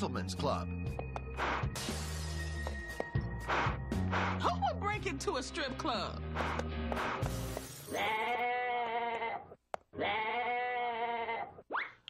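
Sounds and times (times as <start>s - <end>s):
goat bleating: 7.9s - 11.6s.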